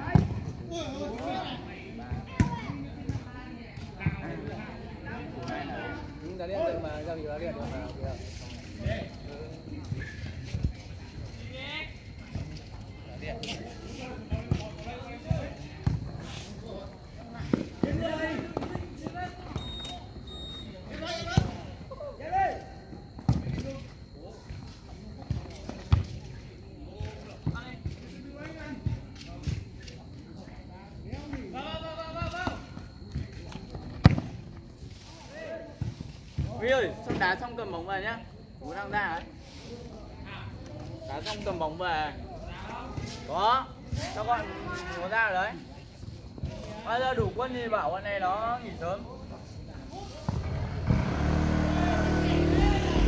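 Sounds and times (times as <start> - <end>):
players shouting: 51.5 - 53.0.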